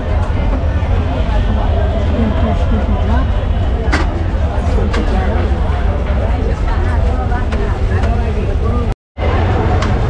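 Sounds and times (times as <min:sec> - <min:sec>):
indistinct voices chattering: 0:00.0 - 0:10.0
traffic rumble: 0:00.0 - 0:10.0.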